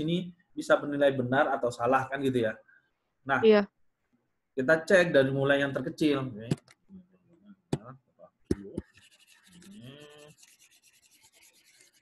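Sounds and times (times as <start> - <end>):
person humming: 9.6 - 10.3.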